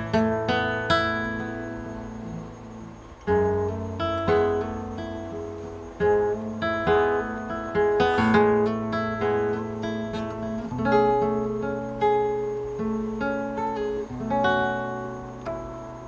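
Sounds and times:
classical guitar fingerstyle: 0.0s - 16.0s.

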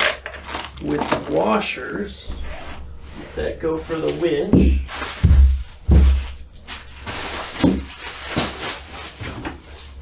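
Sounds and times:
hands rummaging through hardware: 0.0s - 1.6s, 7.0s - 9.8s
heavy thumps: 4.4s - 6.5s.

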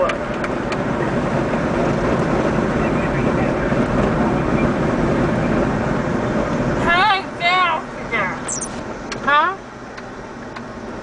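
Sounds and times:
road and wind noise in car: 0.0s - 11.0s.

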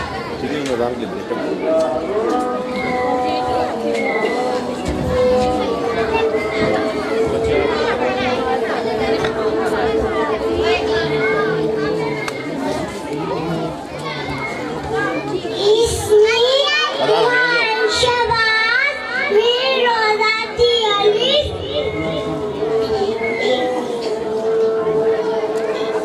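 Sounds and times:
child chanting prayer over loudspeaker: 0.0s - 26.0s.

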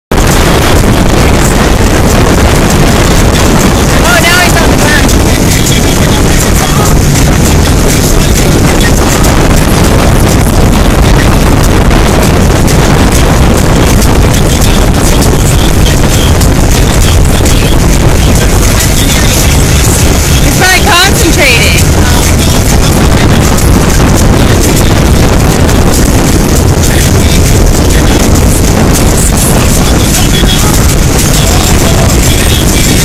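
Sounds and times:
boat wake rushing: 0.1s - 33.0s
outboard motor roaring: 0.1s - 33.0s
wind buffeting microphone: 0.1s - 33.0s.

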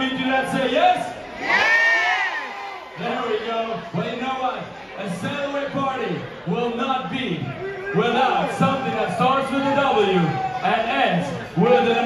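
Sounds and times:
crowd cheering and whooping: 1.3s - 4.1s, 7.6s - 12.0s.

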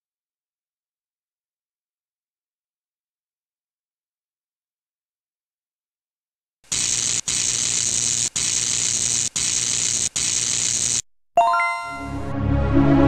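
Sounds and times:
static hiss: 6.7s - 11.0s
electronic chime: 11.4s - 12.3s
logo jingle music: 11.4s - 13.0s.

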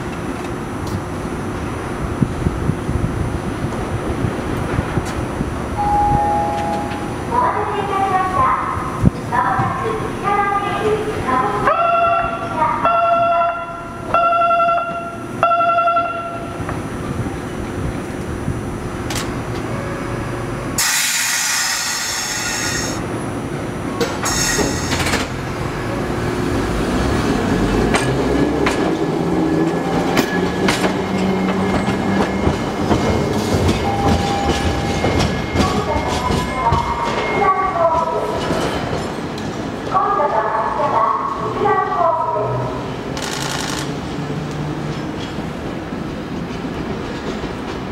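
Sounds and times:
tram horn tones: 5.8s - 7.2s, 19.6s - 20.8s
loud hiss: 20.8s - 23.0s, 24.2s - 25.2s
tram motor hum: 22.0s - 40.0s.

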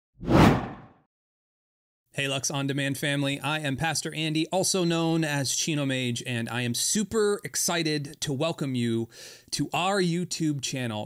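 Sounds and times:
whoosh sound effect: 0.2s - 0.9s.

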